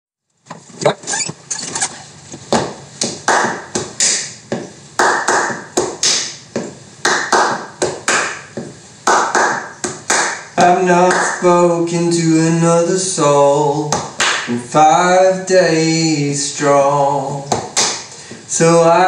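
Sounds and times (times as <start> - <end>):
hands clapping and slapping rhythm: 2.4 - 11.6, 13.9 - 14.6, 17.5 - 18.3.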